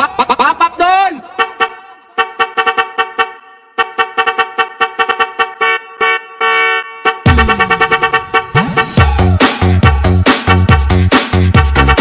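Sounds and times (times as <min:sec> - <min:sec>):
honking horn-like synth stabs: 0:00.0 - 0:12.0.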